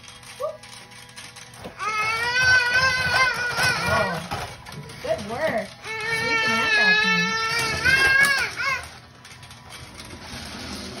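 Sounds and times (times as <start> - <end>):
toddler crying out: 1.8 - 4.4, 5.8 - 9.0.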